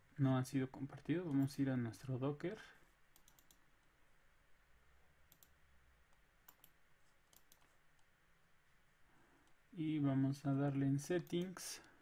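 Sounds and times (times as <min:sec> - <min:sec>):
faint computer mouse clicks: 0:03.1 - 0:03.6, 0:05.3 - 0:08.1, 0:11.2 - 0:12.0.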